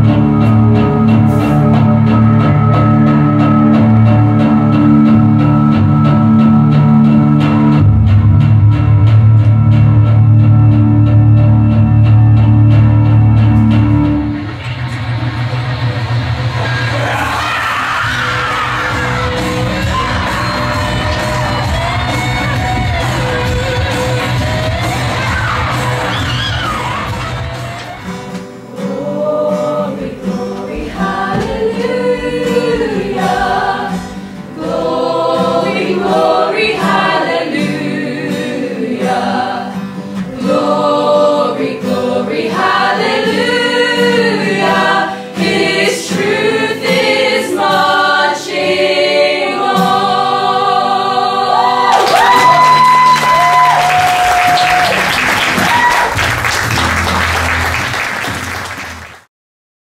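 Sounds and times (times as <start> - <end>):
musical backing: 0.0 - 59.3
audience applause: 14.6 - 28.1, 51.7 - 59.3
cast singing in chorus: 16.7 - 27.8, 28.7 - 52.6.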